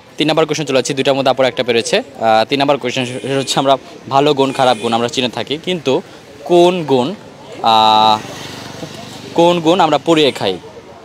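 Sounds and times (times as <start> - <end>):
buzzy horn tone: 4.4 - 5.2.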